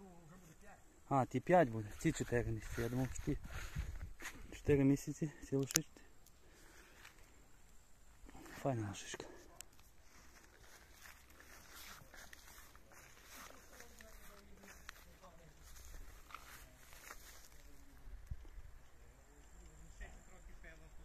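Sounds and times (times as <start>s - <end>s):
faint rustles: 1.7s - 4.6s, 5.2s - 20.2s
soft murmured voices: 8.2s - 21.0s.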